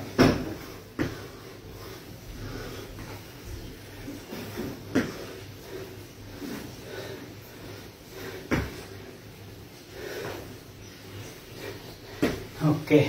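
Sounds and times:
foot thudding on exercise mat: 0.0s - 1.4s, 2.9s - 5.5s, 8.2s - 9.0s, 12.0s - 12.7s.

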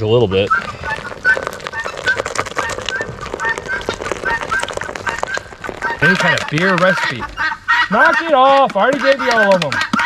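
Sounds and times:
beer fizzing and splashing: 0.0s - 7.5s.

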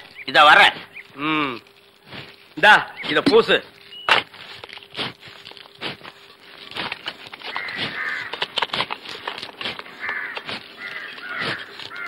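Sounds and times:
crows cawing: 7.4s - 8.6s, 9.8s - 12.0s.

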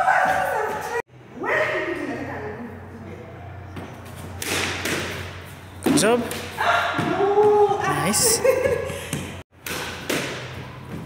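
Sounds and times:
squash ball hitting racket and walls: 3.6s - 7.9s, 8.8s - 11.0s.

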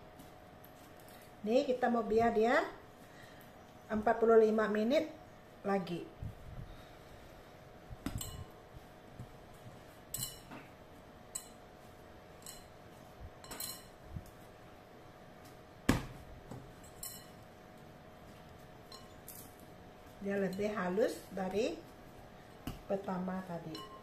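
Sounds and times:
faint steady hum: 0.0s - 24.0s
glass bowl clinking: 13.4s - 13.9s, 16.8s - 17.4s, 23.7s - 24.0s.

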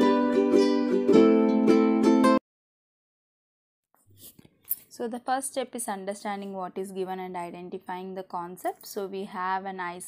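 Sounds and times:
person speaking: 4.2s - 10.0s.

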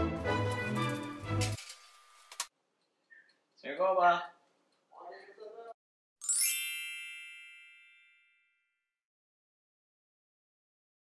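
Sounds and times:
bright chime sound effect: 6.2s - 8.8s.

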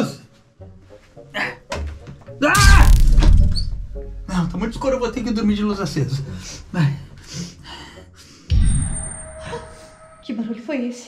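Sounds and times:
background music: 0.0s - 11.0s
deep rumble: 2.6s - 7.3s.

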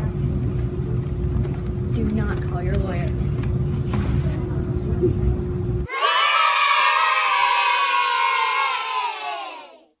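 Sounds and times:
children cheering and shouting: 5.9s - 10.0s.

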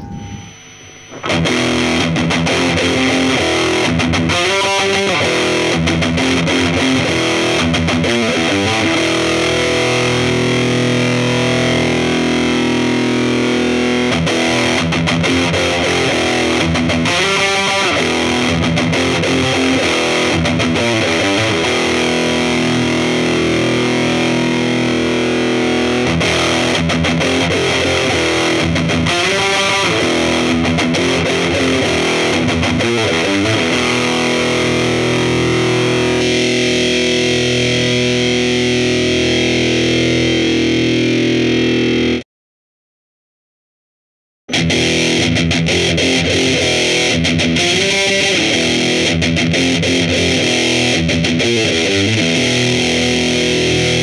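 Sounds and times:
distorted electric guitar riffs: 0.0s - 42.2s, 44.5s - 54.0s.

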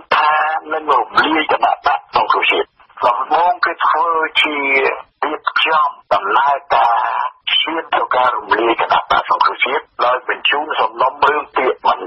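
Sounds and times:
person reading news: 0.0s - 12.0s.

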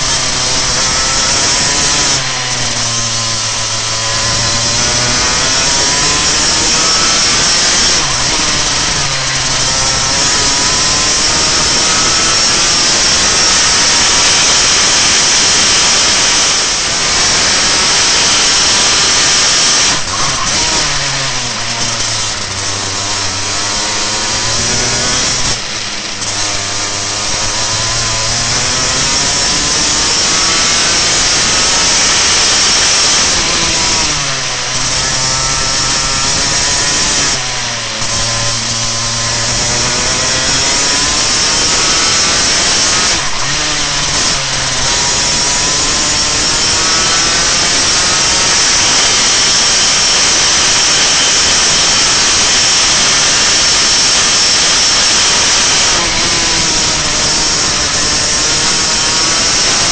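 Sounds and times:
kart engine revving: 0.0s - 59.9s.

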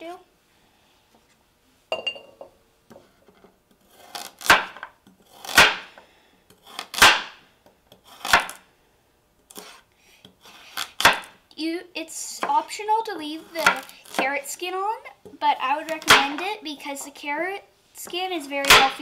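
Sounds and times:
knife chopping carrot on board: 4.4s - 5.9s, 6.7s - 8.6s, 10.7s - 11.4s, 13.6s - 14.3s.

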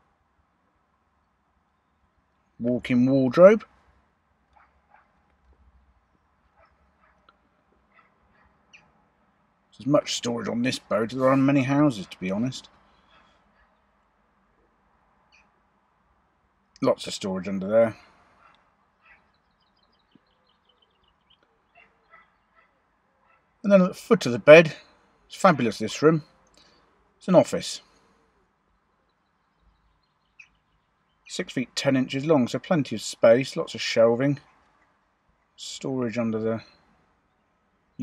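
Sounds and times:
faint high bird chirps: 17.9s - 23.5s, 27.8s - 31.3s.

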